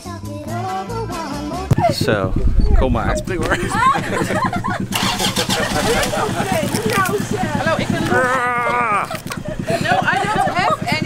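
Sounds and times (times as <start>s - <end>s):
people's voices: 1.6s - 11.0s
engine running with low pulse: 1.7s - 11.0s.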